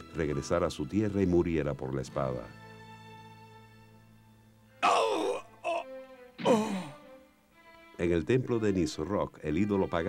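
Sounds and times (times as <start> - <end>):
soft background music: 0.0 - 10.0
man groaning in pain: 4.8 - 7.0.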